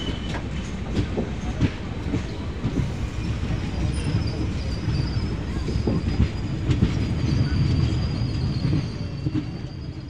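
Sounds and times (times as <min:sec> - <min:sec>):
train wheels rumbling and knocking: 0:00.0 - 0:10.0.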